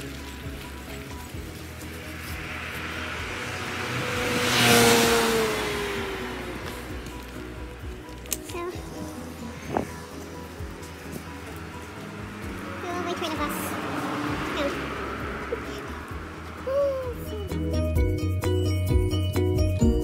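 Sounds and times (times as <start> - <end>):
car passing by: 0.0 - 17.6
steady background music: 0.0 - 20.0.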